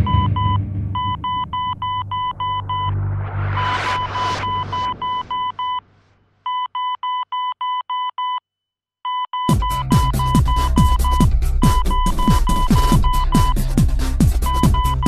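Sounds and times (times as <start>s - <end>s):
low bass drone: 0.0s - 5.6s, 9.6s - 15.0s
rapid electronic beeps: 0.0s - 5.8s, 9.3s - 13.7s, 14.4s - 15.0s
hissing swell: 0.0s - 6.1s.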